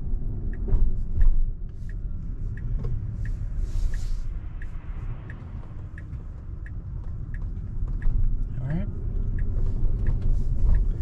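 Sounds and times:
in-cabin road and tyre rumble: 0:00.0 - 0:11.0.

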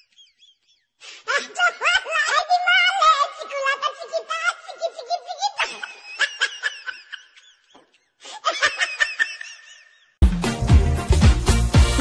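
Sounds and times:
laughter in rapid bursts: 0:00.0 - 0:02.5, 0:03.6 - 0:10.2.

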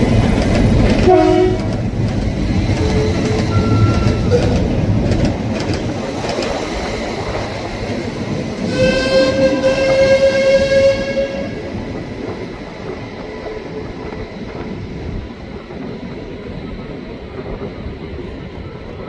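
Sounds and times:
train engine and wheels rumbling: 0:00.0 - 0:19.0
train horn held note: 0:01.0 - 0:01.8, 0:08.7 - 0:11.6.

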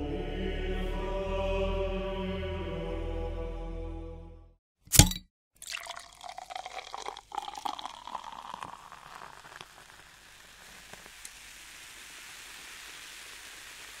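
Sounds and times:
crackling fizzing noise: 0:06.1 - 0:14.0
soft steady hiss: 0:06.7 - 0:14.0.

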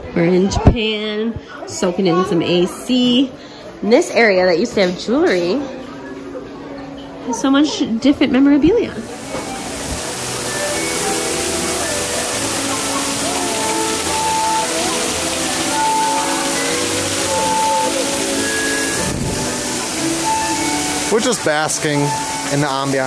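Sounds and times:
fountain water splashing: 0:08.9 - 0:23.0
music of long held notes: 0:09.0 - 0:23.0.

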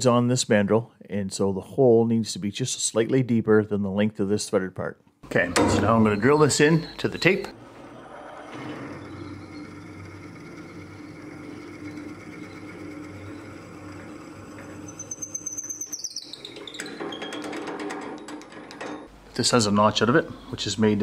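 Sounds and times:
wood lathe humming: 0:06.9 - 0:17.1
drill bit boring into wood: 0:08.1 - 0:16.8
rough chattering cut: 0:08.8 - 0:16.0.

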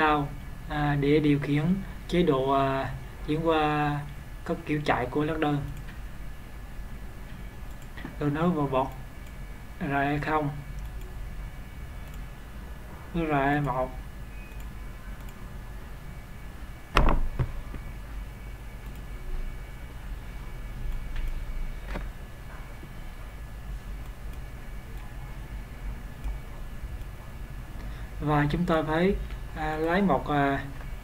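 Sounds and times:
low background hum and hiss: 0:00.0 - 0:31.0.

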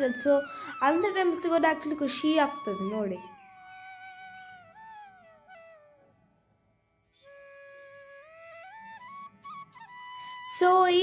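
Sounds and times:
slow flute melody: 0:00.0 - 0:06.2, 0:07.2 - 0:11.0.

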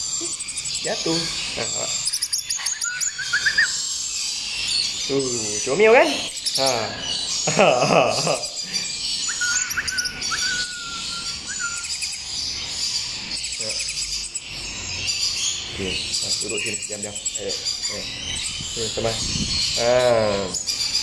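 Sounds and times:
wavering bird call: 0:00.0 - 0:04.5, 0:05.1 - 0:12.3
lorikeets chattering: 0:00.0 - 0:21.0
thin steady whistle: 0:09.3 - 0:12.2.

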